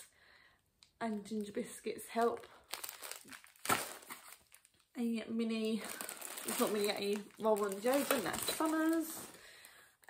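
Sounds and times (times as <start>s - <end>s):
biscuit packet crinkling: 2.1s - 9.7s.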